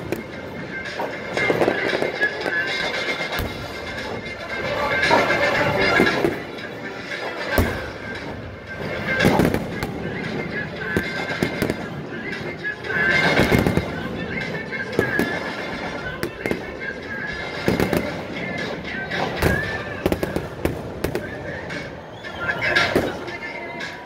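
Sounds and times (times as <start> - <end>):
fireworks bangs and crackles: 0.0 - 6.7, 7.4 - 23.8
marching band sustained chords: 0.0 - 24.0.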